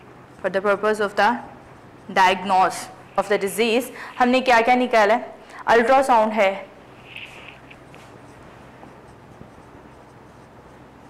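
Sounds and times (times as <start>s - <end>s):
low room hum: 0.0s - 11.0s
marker scratching on whiteboard: 0.3s - 5.1s, 5.8s - 11.0s.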